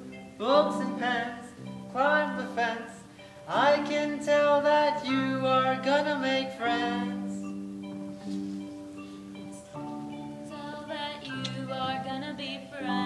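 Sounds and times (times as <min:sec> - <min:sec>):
instrumental accompaniment: 0:00.0 - 0:13.0
person singing: 0:00.4 - 0:07.5, 0:09.3 - 0:13.0.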